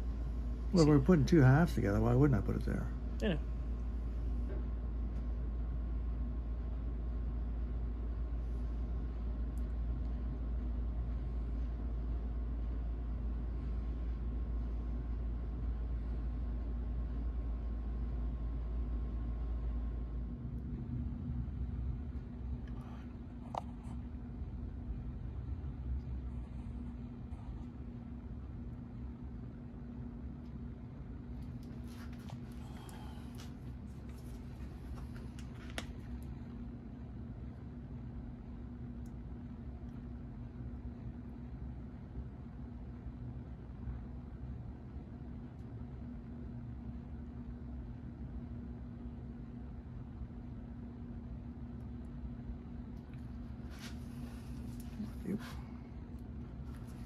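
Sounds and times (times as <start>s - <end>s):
deep rumble: 0.0s - 37.0s
workshop hum: 0.0s - 43.0s, 43.7s - 57.0s.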